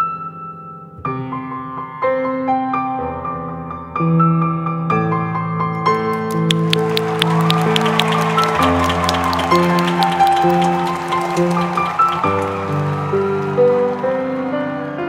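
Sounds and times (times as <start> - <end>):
audience applause: 5.8 - 15.0.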